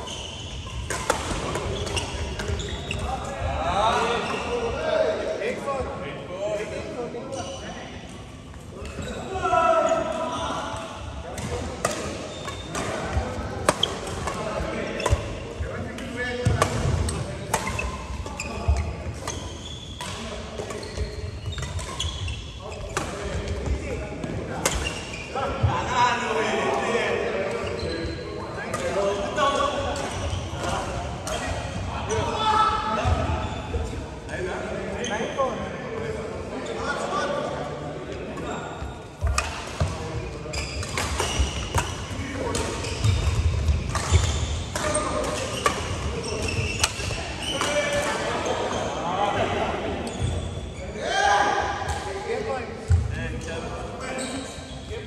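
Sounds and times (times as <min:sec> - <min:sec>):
rackets hitting shuttlecock: 0:00.8 - 0:03.1, 0:11.3 - 0:15.4, 0:39.2 - 0:40.1, 0:40.8 - 0:48.4
people talking: 0:01.1 - 0:07.9, 0:08.8 - 0:19.4, 0:22.6 - 0:41.4, 0:42.0 - 0:55.0.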